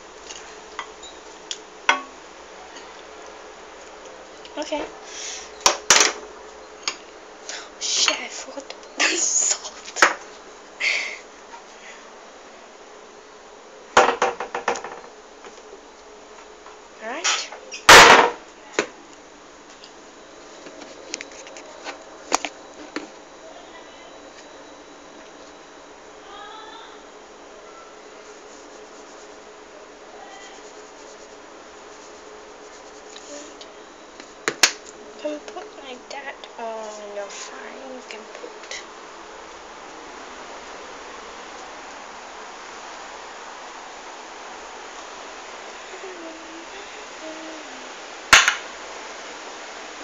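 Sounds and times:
steady low hiss: 0.0 - 50.0.

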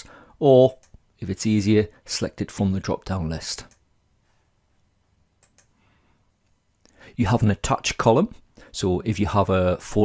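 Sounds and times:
computer mouse clicks: 5.4 - 5.8.

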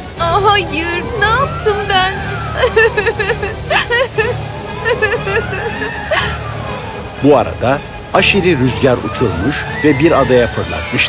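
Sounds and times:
low wind rumble: 0.0 - 11.0
woman sobbing: 0.8 - 6.7.

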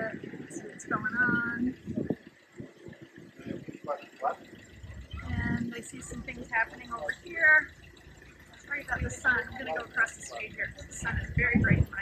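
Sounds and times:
city street background noise: 0.0 - 12.0
people talking nearby: 0.0 - 12.0.

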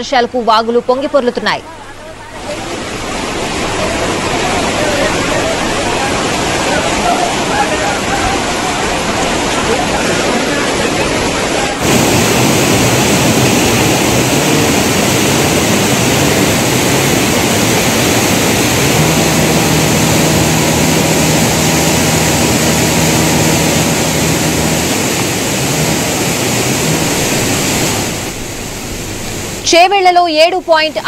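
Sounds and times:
floodwater rushing: 1.6 - 31.0.

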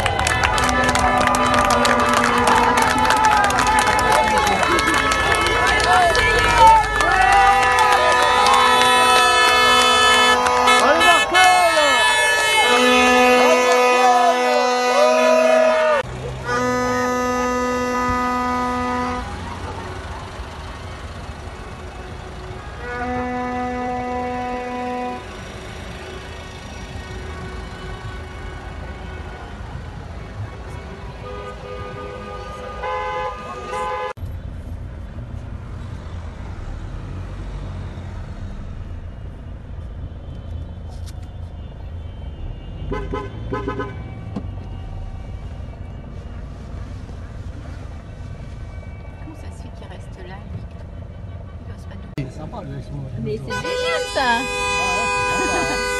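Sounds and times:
crowd shouting: 0.0 - 16.7
horn blasts: 0.0 - 34.2, 38.4 - 49.2, 53.3 - 55.9
car engine and road rumble: 0.0 - 55.9.

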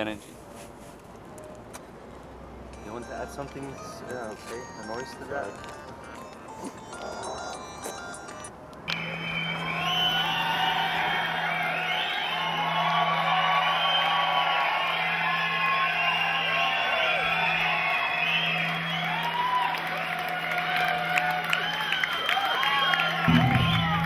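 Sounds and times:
low droning note: 23.2 - 24.0
rock band playing: 23.2 - 24.0.

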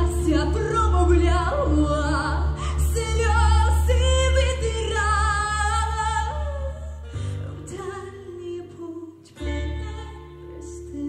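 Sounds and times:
girl singing pop vocals: 0.0 - 11.0.

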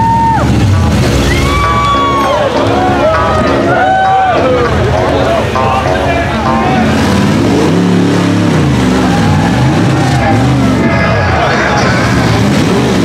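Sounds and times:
voices calling out: 0.0 - 13.0
engine revving under load: 4.6 - 13.0.

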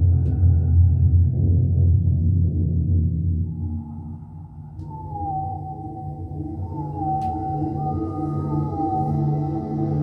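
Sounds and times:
low electronic drone: 0.0 - 10.0
high tone gliding downward: 4.8 - 10.0.

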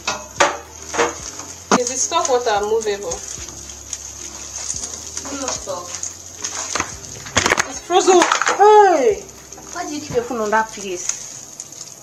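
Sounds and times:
wooden spoon knocking metal pot: 0.0 - 3.4
rice being stirred: 0.0 - 12.0.

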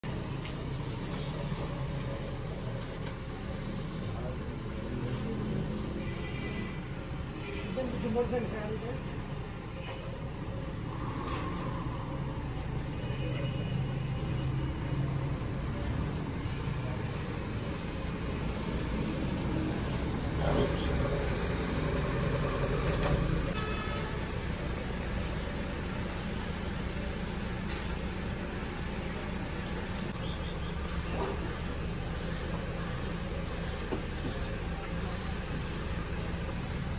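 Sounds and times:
car engine low rumble: 13.8 - 23.6, 24.2 - 36.9.

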